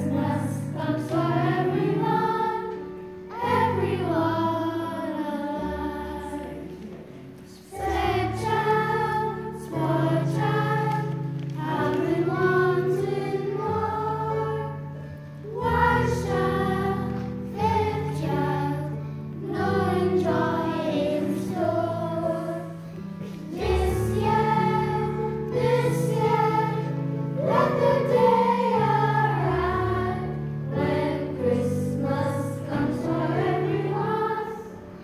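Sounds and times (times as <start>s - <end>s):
children's choir singing: 0.0s - 35.0s.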